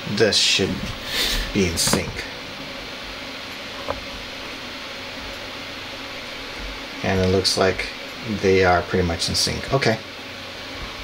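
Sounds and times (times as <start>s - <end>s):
steady room hiss: 0.0s - 11.0s.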